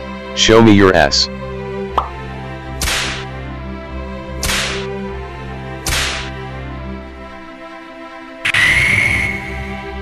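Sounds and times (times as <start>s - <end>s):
background music: 0.0s - 10.0s
whip cracks: 2.8s - 3.2s, 4.4s - 4.9s, 5.8s - 6.4s.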